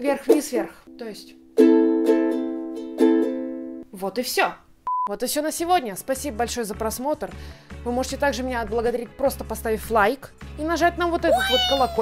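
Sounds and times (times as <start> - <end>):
ukulele strumming: 1.6 - 3.8.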